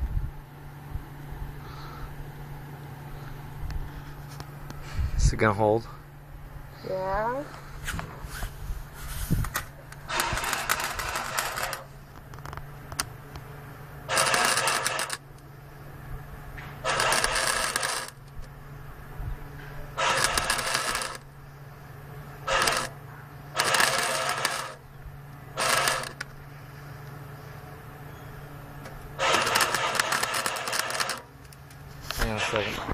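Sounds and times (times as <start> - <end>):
steady low hum: 0.0 - 32.9
welder arc crackling: 9.9 - 13.1, 14.1 - 15.2, 16.8 - 18.3, 20.0 - 21.3, 22.4 - 23.0, 23.6 - 24.8, 25.6 - 26.3, 29.2 - 32.4.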